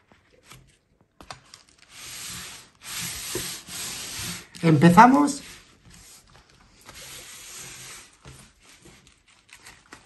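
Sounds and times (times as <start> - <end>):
paper rustling and scraping: 0.0 - 10.0.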